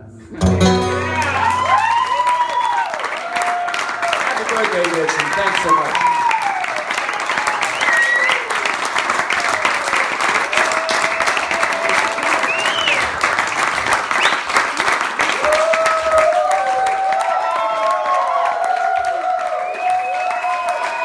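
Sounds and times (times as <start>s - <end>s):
people calling out and cheering: 0.5s - 8.6s
audience applauding: 0.8s - 21.0s.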